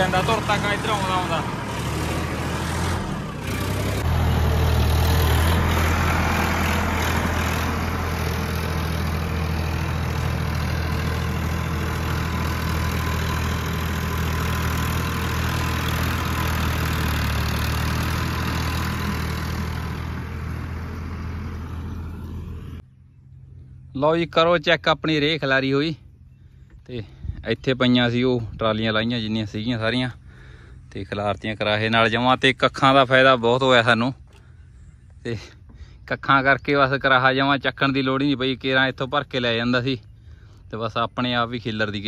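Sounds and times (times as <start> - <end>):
tractor diesel engine under load: 0.0 - 42.0.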